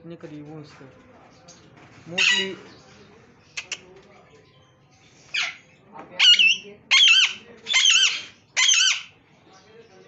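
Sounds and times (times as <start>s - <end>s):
parakeet screeching: 2.2s - 2.6s, 5.3s - 9.2s.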